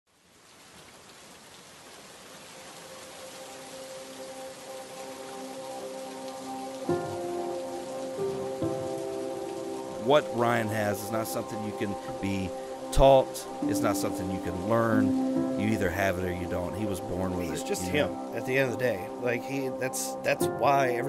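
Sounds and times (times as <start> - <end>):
heavy rain falling: 0.1 - 21.0
soft sustained music notes: 2.9 - 21.0.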